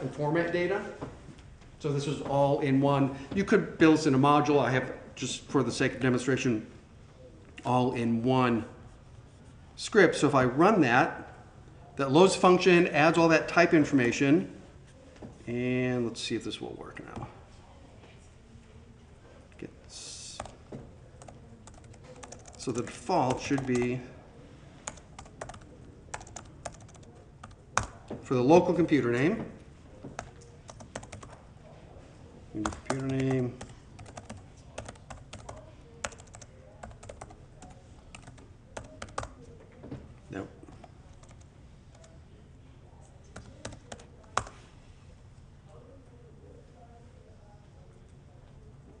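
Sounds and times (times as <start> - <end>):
person speaking: 19.5 - 39.6
keyboard typing: 21.2 - 24.0, 24.8 - 28.1, 30.1 - 31.4, 32.6 - 39.4, 40.7 - 42.2, 43.3 - 44.6.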